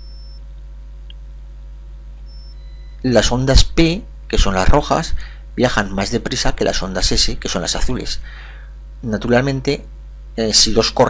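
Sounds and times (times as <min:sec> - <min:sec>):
low hum: 0:00.0 - 0:10.4.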